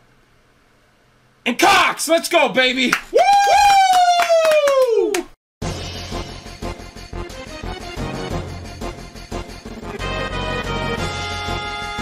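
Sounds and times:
men clapping hands rapidly: 2.8s - 5.4s.

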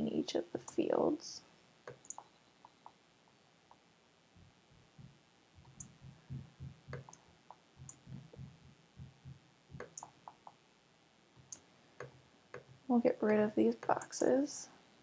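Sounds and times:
computer mouse clicking: 1.9s - 3.0s, 6.9s - 7.2s, 9.8s - 10.6s
soft low knocks: 4.4s - 10.5s.

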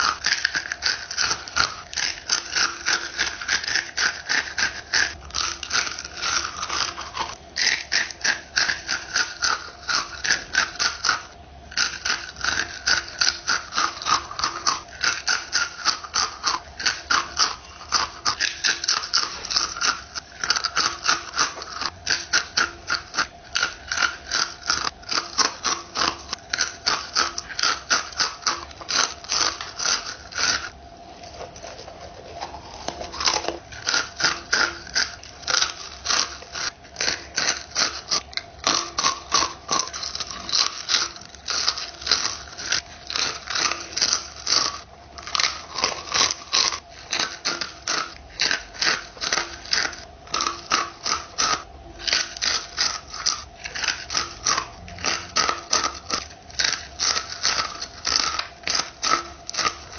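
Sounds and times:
crunching tortilla chips: 0.0s - 59.9s.

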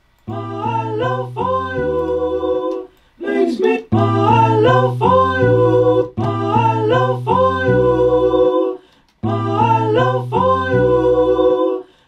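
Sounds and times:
looped soul vocal sample: 0.0s - 12.0s
low sustained notes: 0.3s - 2.8s.

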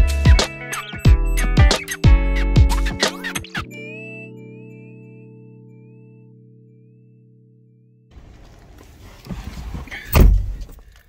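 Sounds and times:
car door shutting: 8.2s - 11.0s
rustling movement: 8.2s - 11.0s.

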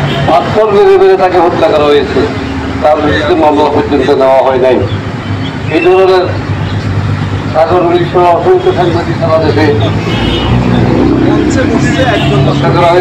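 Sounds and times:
man speaking into a microphone: 0.0s - 5.0s, 5.7s - 6.5s, 7.4s - 10.2s, 11.1s - 13.0s
road traffic: 0.0s - 13.0s.

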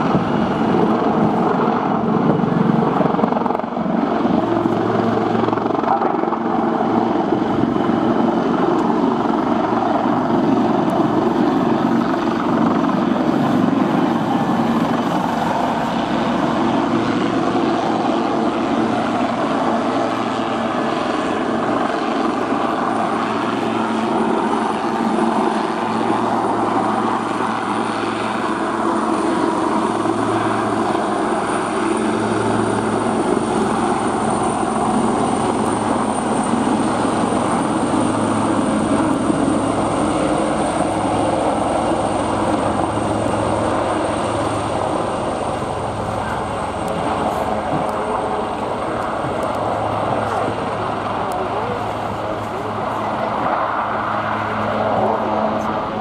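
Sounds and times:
helicopter rotors and engines: 0.0s - 56.0s.

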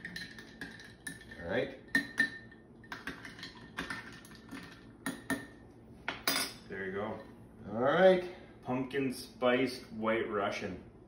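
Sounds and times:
spoon clinking in a glass: 0.0s - 5.5s.

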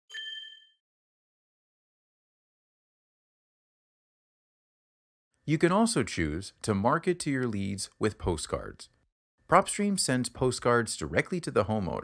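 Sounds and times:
bright chime: 0.1s - 0.8s.

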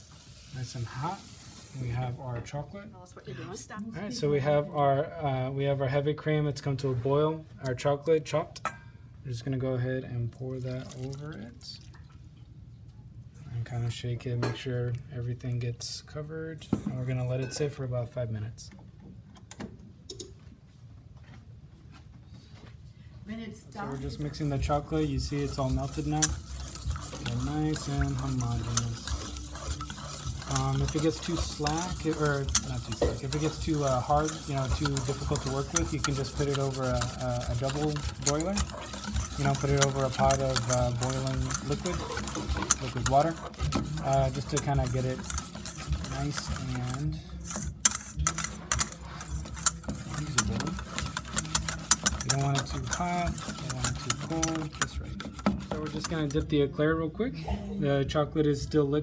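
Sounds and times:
utensils clicking and tapping: 23.9s - 56.5s.

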